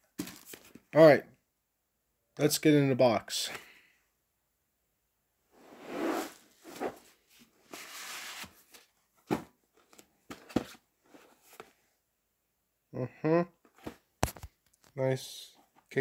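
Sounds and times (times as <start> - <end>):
plastic case sliding out of box: 5.7 - 7.0.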